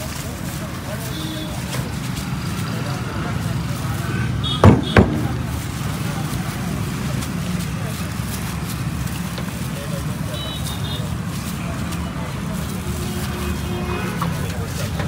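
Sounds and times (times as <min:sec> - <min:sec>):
indistinct background voices: 0:00.0 - 0:15.0
traffic rumble: 0:00.0 - 0:15.0.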